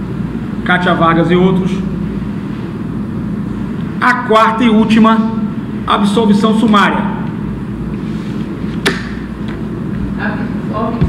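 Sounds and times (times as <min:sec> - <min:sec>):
low room rumble: 0:00.0 - 0:11.0
sharp click: 0:08.8 - 0:09.2.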